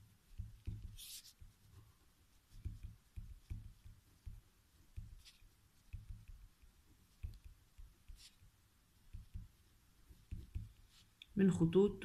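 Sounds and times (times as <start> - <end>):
pen writing on paper: 0.3 - 1.6, 2.5 - 8.5, 9.1 - 11.0
sharp pen scratch: 0.6 - 1.6.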